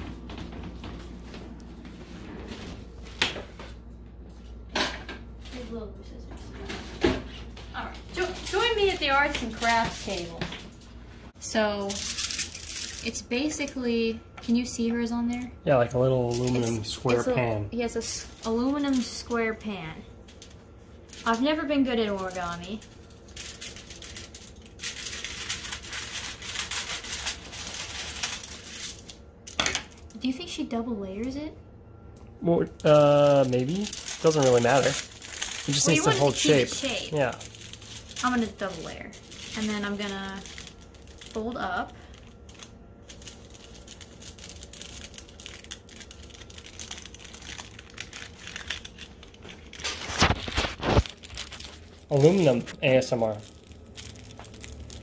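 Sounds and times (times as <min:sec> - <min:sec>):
foil crinkling: 0:07.8 - 0:10.7, 0:11.5 - 0:14.1, 0:15.7 - 0:30.2, 0:32.6 - 0:55.0
scissors cutting foil: 0:11.7 - 0:13.8, 0:16.3 - 0:17.3, 0:18.4 - 0:19.5, 0:21.2 - 0:30.0, 0:32.8 - 0:55.0.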